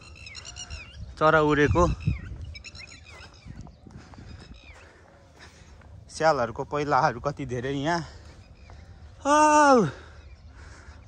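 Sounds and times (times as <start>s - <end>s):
low wind rumble: 0.0s - 11.0s
small birds chirping: 0.0s - 11.0s.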